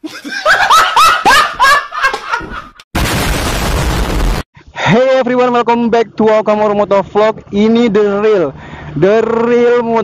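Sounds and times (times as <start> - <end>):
man laughing hard: 0.0 - 2.8.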